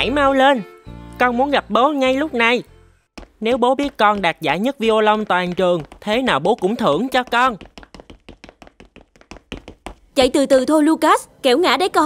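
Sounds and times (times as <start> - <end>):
child running down wooden stairs: 3.2 - 10.2.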